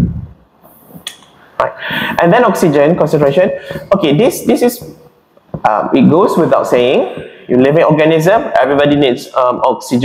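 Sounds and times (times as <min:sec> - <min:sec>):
lecturer speaking: 0:01.6 - 0:10.0.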